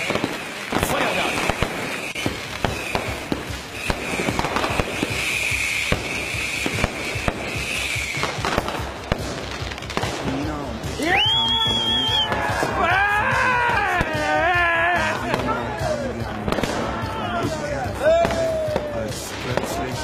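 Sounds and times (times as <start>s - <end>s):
firecracker bangs and crackling: 0.0s - 20.0s.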